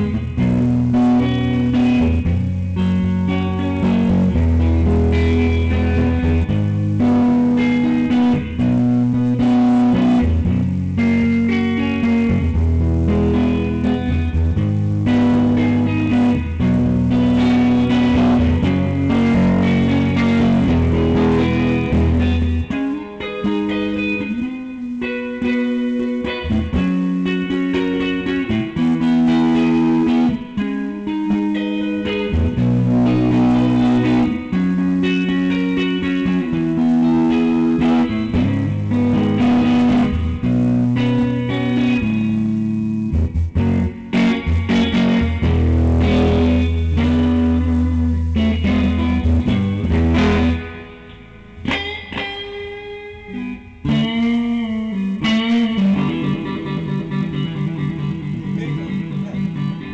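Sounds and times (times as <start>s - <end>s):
electric guitar playing: 0.0s - 59.9s.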